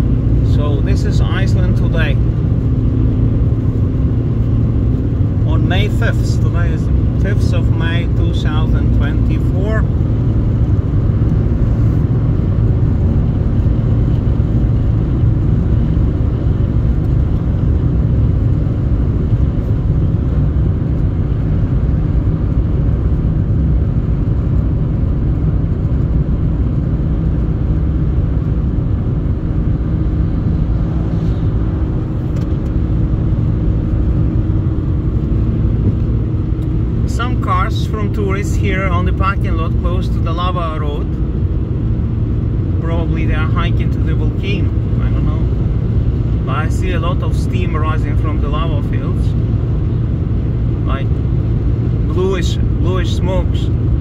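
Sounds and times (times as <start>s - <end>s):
car road and engine rumble: 0.0s - 54.0s.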